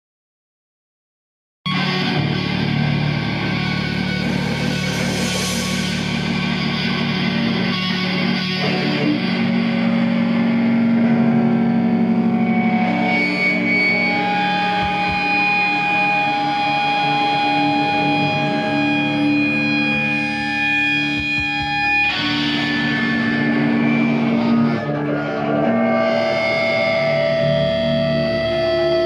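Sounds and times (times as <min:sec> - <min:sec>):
bass guitar sustained notes: 0:01.7 - 0:29.0
distorted electric guitars: 0:01.7 - 0:29.0.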